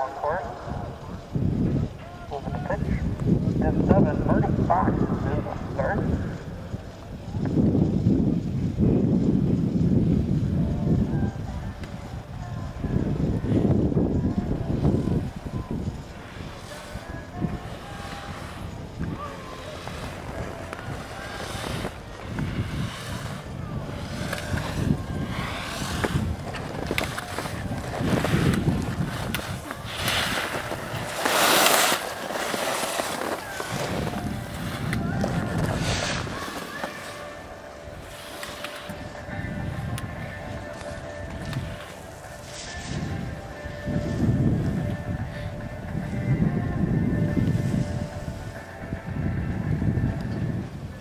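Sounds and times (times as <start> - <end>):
faint background music: 0.0 - 51.0
skis scraping across snow: 0.0 - 51.0
wind buffeting microphone: 0.2 - 51.0.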